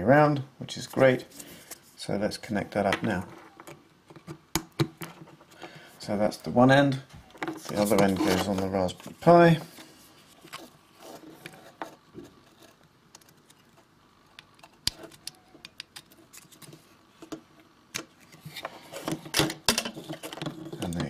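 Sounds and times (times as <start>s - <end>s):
plastic rubbing and handling: 7.3s - 17.3s, 18.2s - 21.0s.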